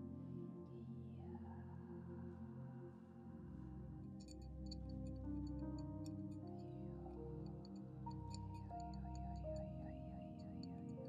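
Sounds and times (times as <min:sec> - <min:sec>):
soft ambient music: 0:00.0 - 0:11.0.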